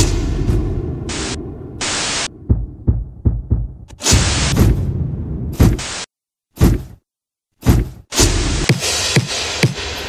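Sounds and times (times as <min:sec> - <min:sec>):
low thumps: 0:00.0 - 0:05.9
static hiss bursts: 0:01.1 - 0:02.3, 0:05.7 - 0:06.1.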